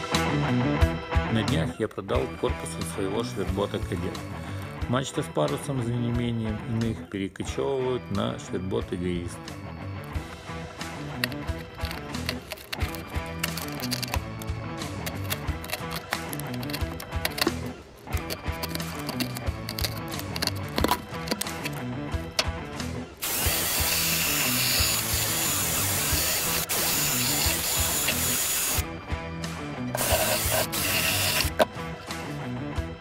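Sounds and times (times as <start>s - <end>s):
background music with a beat: 0.0s - 7.0s, 7.6s - 33.0s
electric drill running: 23.2s - 28.8s, 30.0s - 31.6s.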